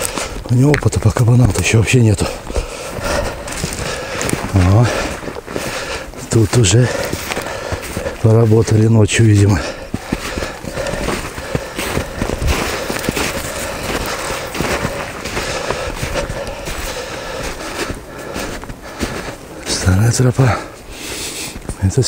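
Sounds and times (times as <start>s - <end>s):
footsteps crunching in snow: 0.0s - 21.9s.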